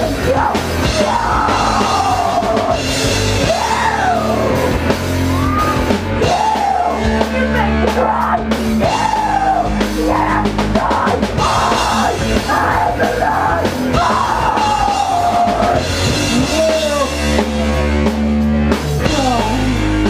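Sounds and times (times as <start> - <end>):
person yelling lead vocal: 0.0 - 18.0, 19.0 - 20.0
punk band playing live: 0.0 - 20.0.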